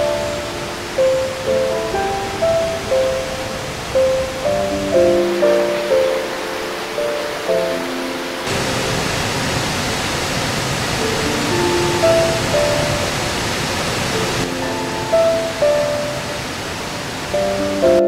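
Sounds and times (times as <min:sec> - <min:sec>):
music of slow decaying notes: 0:00.0 - 0:09.5, 0:11.0 - 0:18.0.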